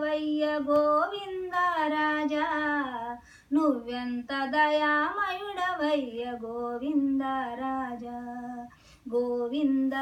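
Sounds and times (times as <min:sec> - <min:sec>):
elderly woman singing unaccompanied: 0:00.0 - 0:10.0.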